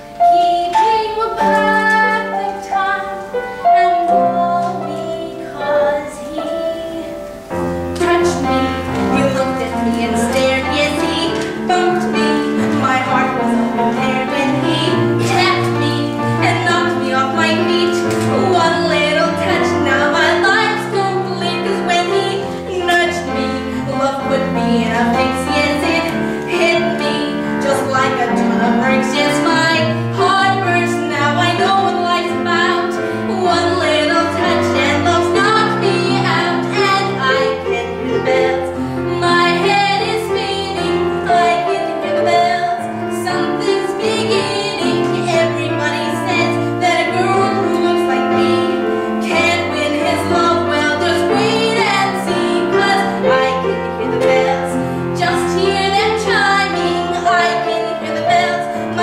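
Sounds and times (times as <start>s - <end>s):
piano accompaniment: 0.0s - 59.0s
woman singing: 0.0s - 59.0s.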